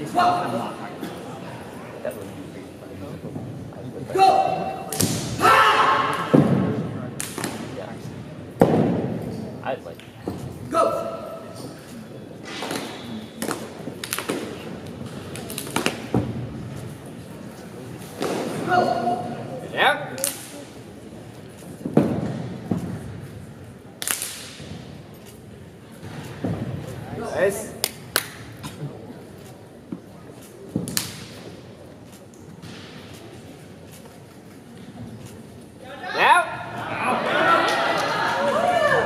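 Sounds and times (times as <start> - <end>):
sharp slap echoing: 4.9 - 7.7, 24.0 - 24.7
uniforms snapping: 12.8 - 14.6, 24.0 - 24.6.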